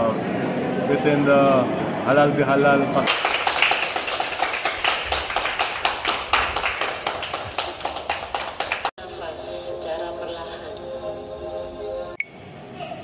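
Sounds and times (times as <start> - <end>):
hands clapping rhythmically: 3.0 - 9.0.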